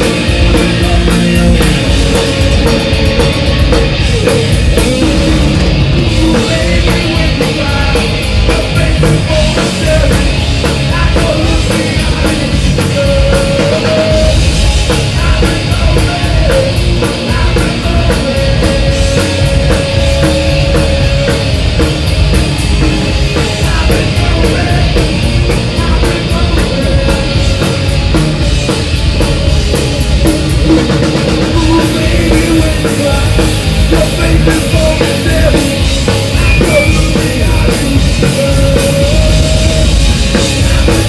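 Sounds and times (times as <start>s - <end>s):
distorted electric guitar: 0.0s - 41.0s
drums with fast cymbal beat: 0.0s - 41.0s.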